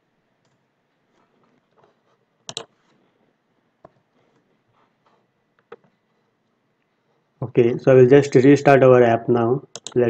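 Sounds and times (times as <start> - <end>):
keyboard keystrokes: 2.5 - 2.7, 9.8 - 10.0.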